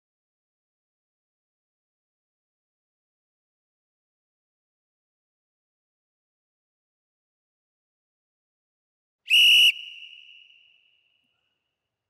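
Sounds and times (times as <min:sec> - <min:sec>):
boxing timer whistle tone: 0:09.3 - 0:10.7.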